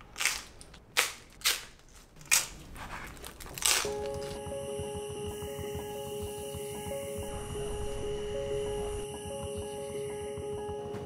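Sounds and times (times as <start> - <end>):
pizza crust crunching: 0.0 - 4.4.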